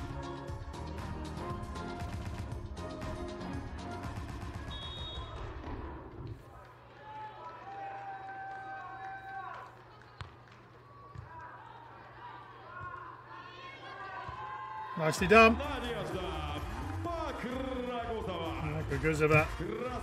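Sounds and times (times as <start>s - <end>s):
arena ambience: 4.5s - 20.0s.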